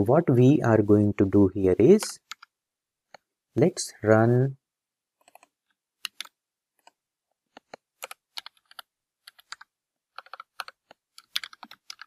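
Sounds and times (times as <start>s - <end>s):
computer keyboard typing: 2.0s - 2.6s, 5.2s - 12.0s.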